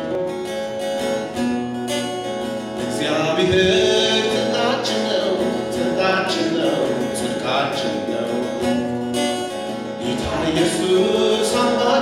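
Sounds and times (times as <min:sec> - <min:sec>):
voices singing worship song: 0:02.9 - 0:08.5, 0:10.0 - 0:12.0
sustained instrumental accompaniment: 0:03.3 - 0:05.3.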